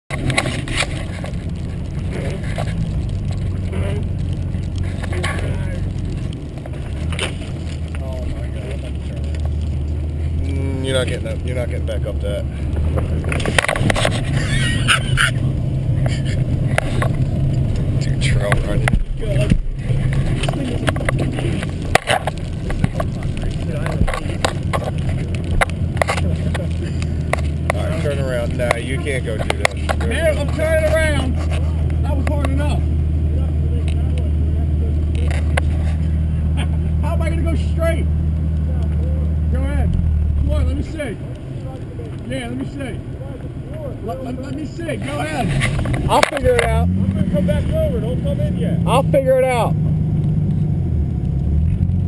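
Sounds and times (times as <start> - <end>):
car engine running hard: 0.1 - 52.0.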